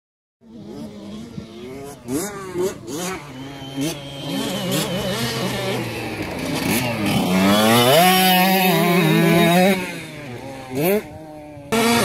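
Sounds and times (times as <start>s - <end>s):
motocross engine running: 0.4s - 12.0s.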